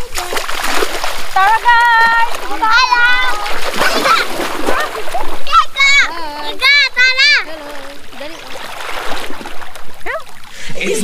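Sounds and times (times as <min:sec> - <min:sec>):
people splashing through water: 0:00.0 - 0:11.0
high-pitched voices calling out: 0:01.4 - 0:08.7.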